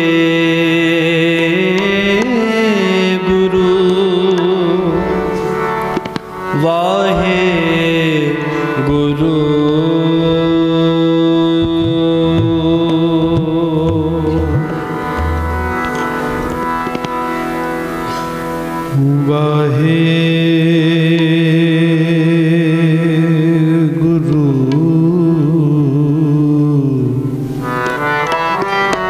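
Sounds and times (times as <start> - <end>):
devotional music with gliding melody: 0.0 - 29.0
person singing long notes: 0.0 - 29.0
held low drone note: 13.3 - 18.4.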